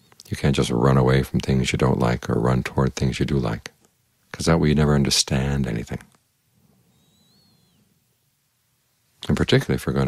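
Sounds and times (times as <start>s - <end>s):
faint high wavering whistle: 6.9s - 8.0s.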